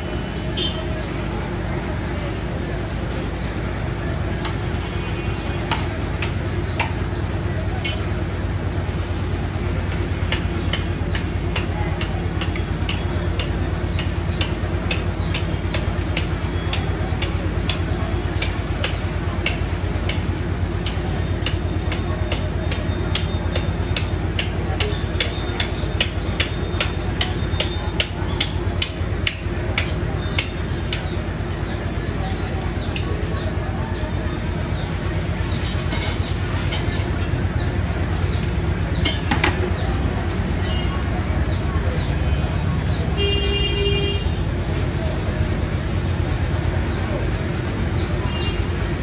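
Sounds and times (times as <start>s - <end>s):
sharp clicks and knocks: 5.7s - 7.2s, 9.8s - 31.2s, 35.5s - 39.9s.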